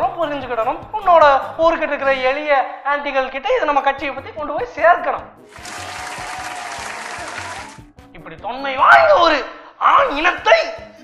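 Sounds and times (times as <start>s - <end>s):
audience applause: 5.5s - 7.8s.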